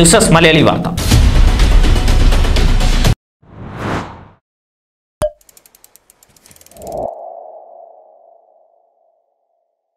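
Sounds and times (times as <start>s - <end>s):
quick ticking: 5.2s - 7.1s
rising whoosh: 6.7s - 9.1s.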